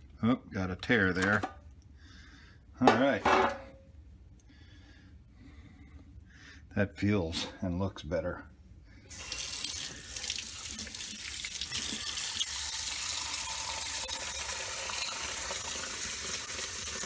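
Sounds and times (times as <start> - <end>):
tap water running into sink: 9.2 - 17.0.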